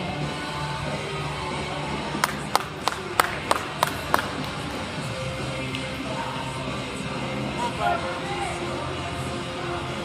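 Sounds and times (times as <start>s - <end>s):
background music: 0.0s - 10.0s
sharp hand claps: 2.2s - 4.8s.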